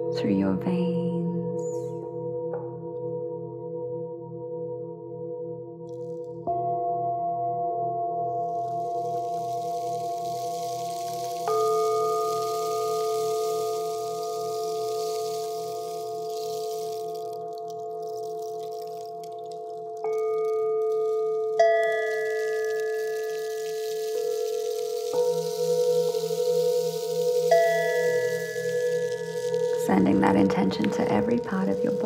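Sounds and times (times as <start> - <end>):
singing bowls ringing: 8.2 - 32.0.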